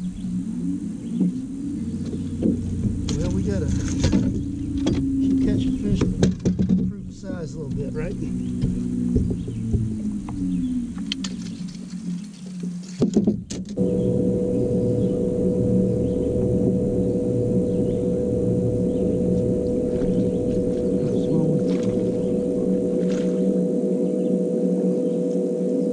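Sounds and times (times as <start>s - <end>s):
electric boat motor humming: 0.0s - 25.9s
motor clicks: 8.1s - 12.8s.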